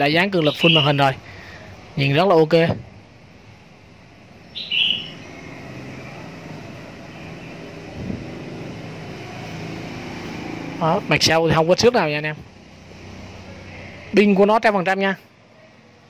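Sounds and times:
street traffic drone: 0.0s - 16.0s.

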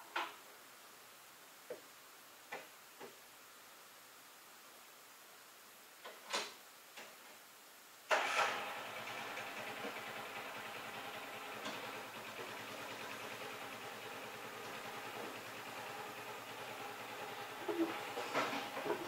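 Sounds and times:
engine starting and idling: 8.1s - 19.0s.

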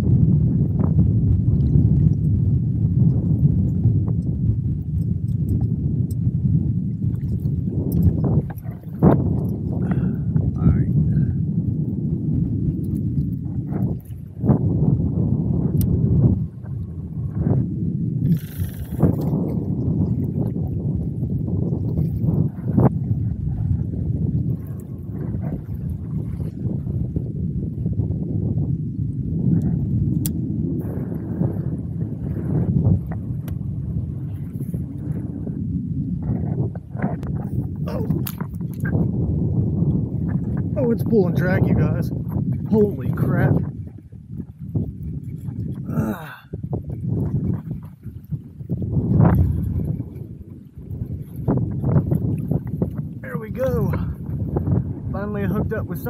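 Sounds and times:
wind buffeting microphone: 0.0s - 56.0s
water lapping at kayak hull: 6.8s - 28.2s, 29.4s - 56.0s.

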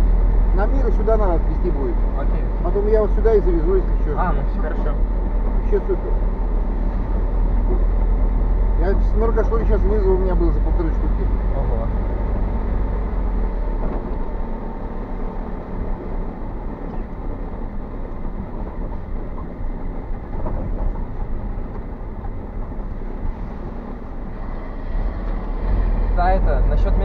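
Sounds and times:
vehicle engine rumble: 0.0s - 27.0s.

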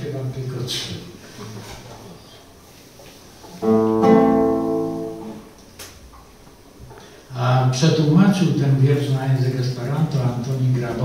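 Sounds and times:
acoustic guitar chord strummed: 3.6s - 5.5s.

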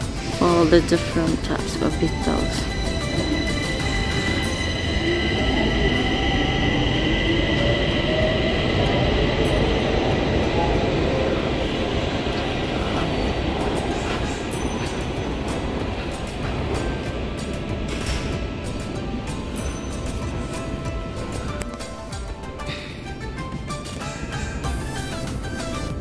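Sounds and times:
high whining tones: 0.0s - 26.0s
metro train running: 0.0s - 26.0s
music playing: 0.0s - 26.0s.

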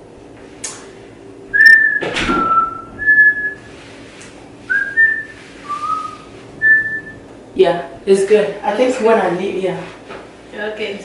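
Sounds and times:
person whistling notes: 1.6s - 3.7s, 4.7s - 7.2s.

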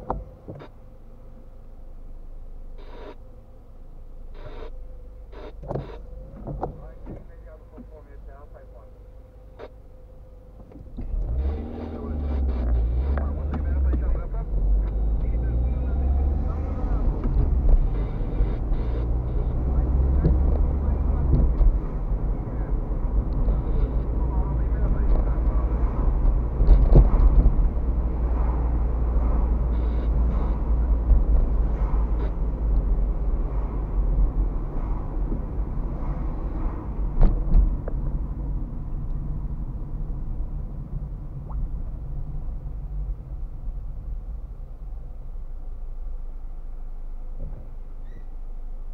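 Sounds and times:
car engine and road rumble: 0.0s - 48.9s.

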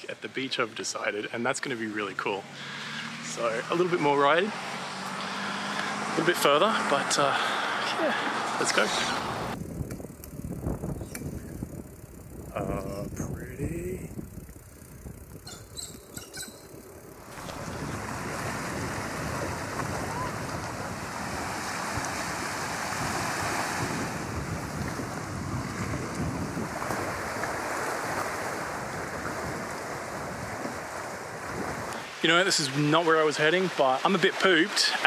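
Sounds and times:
wind noise on microphone: 9.2s - 32.1s.

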